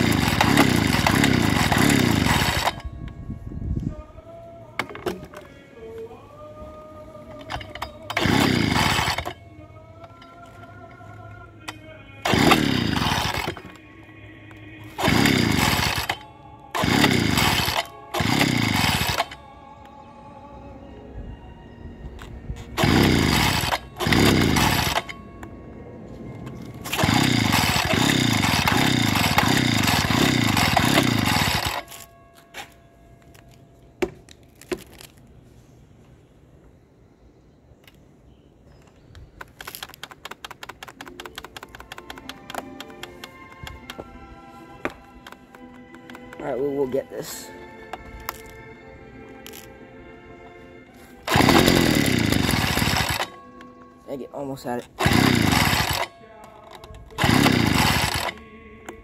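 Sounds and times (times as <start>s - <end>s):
engine cranking without catching: 0.0s - 3.2s, 7.1s - 20.0s, 22.2s - 25.5s, 26.3s - 32.5s, 39.0s - 44.0s, 44.8s - 48.7s, 51.2s - 59.0s
leaf blower recoil starter pulls: 0.0s - 3.2s, 7.2s - 13.9s, 14.5s - 19.5s, 22.2s - 25.2s, 26.4s - 32.7s, 39.4s - 44.1s, 44.8s - 48.6s, 49.3s - 49.8s, 51.0s - 59.0s.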